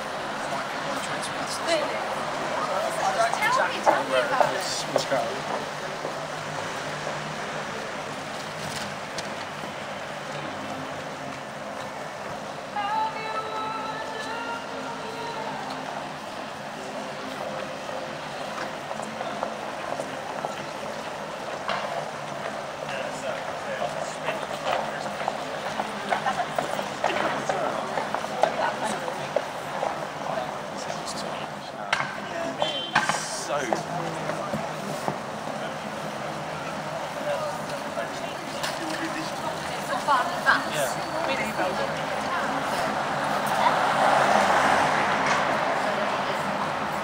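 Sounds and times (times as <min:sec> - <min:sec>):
light traffic: 0:00.0 - 0:47.0
passers-by talking: 0:00.0 - 0:47.0.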